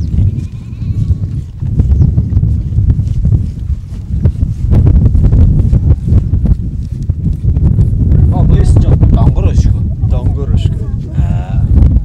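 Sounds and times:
wind rumble on microphone: 0.0 - 12.0
goat bleating: 0.3 - 1.4.

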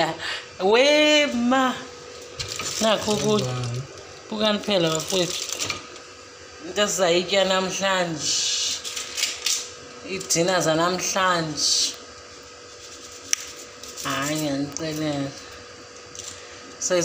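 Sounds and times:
aluminium foil crinkling: 2.2 - 6.0, 12.7 - 15.3.

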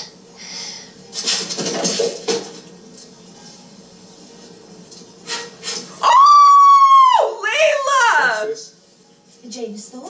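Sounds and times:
woman squealing: 6.0 - 8.4.

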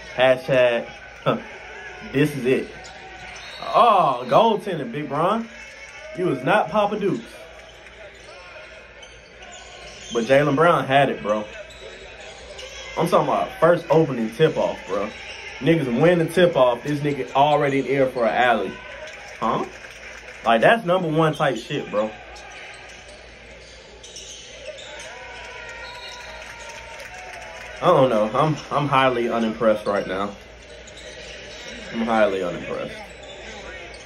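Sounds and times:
crowd talking: 0.0 - 34.0.

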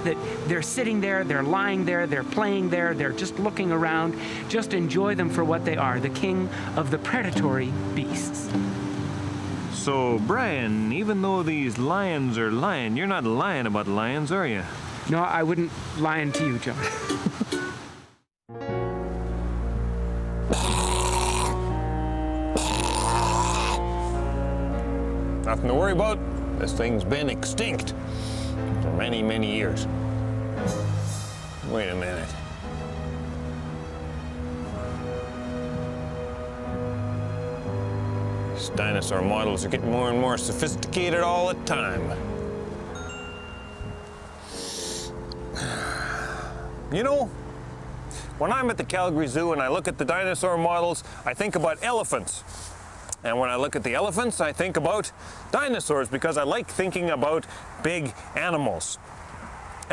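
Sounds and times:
low music chords: 0.0 - 11.1, 18.5 - 50.4
breathy hisses: 4.2 - 4.5, 28.0 - 28.6, 44.4 - 46.8, 52.4 - 52.8.

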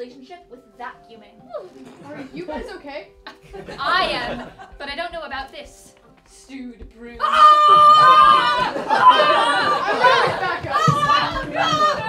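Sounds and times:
people talking and exclaiming: 7.2 - 12.0.

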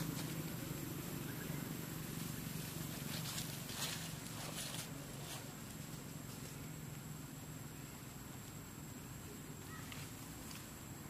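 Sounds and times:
rustling in grass and dry leaves: 0.0 - 11.0
steady low hum: 0.0 - 11.0.

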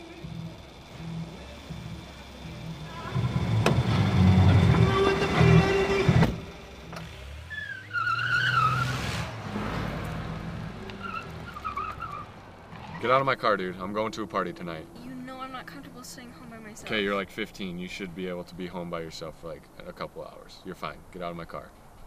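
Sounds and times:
van engine pulling away: 0.0 - 17.2
tyre squeal: 7.0 - 9.3, 10.9 - 13.3.

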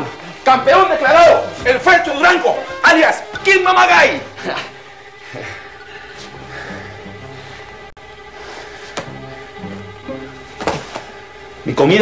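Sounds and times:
dramatic background music: 0.2 - 12.0.

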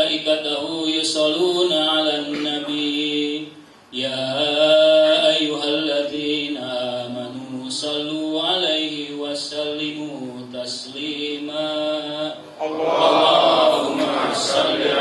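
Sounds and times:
man chanting through a microphone: 0.0 - 13.0.

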